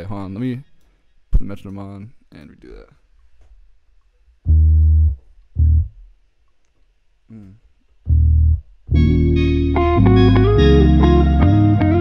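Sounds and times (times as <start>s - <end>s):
sampled electric bass notes: 4.4s - 6.2s, 7.4s - 12.0s.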